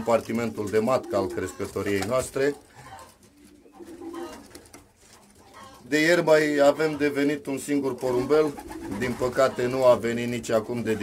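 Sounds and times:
pigeon cooing: 0:00.0 - 0:01.7, 0:02.6 - 0:05.9, 0:08.0 - 0:10.0.

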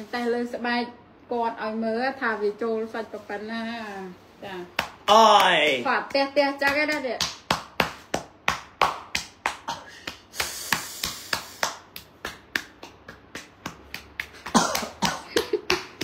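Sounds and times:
hand slapping bare skin: 0:04.7 - 0:16.0
man crying out: 0:05.1 - 0:05.7
breathy hiss: 0:09.8 - 0:11.8.

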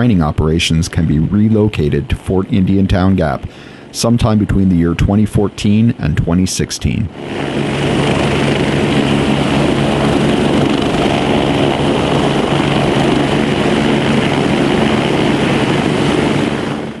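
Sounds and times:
helicopter turbines and rotors: 0:00.0 - 0:17.0.

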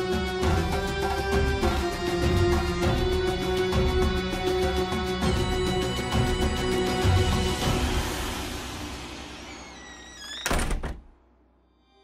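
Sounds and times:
music: 0:00.0 - 0:12.0
rising squeaky tones: 0:08.9 - 0:10.8
wooden door closing with thud: 0:10.0 - 0:11.1.

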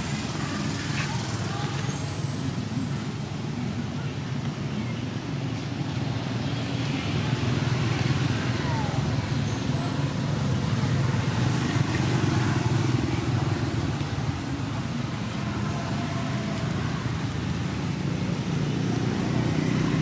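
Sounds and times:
faint voices: 0:00.0 - 0:05.5, 0:06.8 - 0:20.0.

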